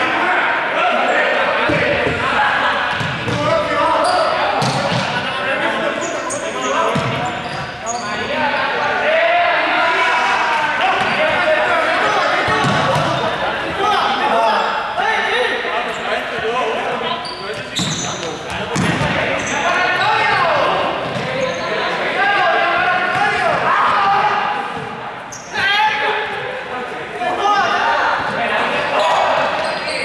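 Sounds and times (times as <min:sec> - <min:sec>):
young people chattering and calling: 0:00.0 - 0:30.0.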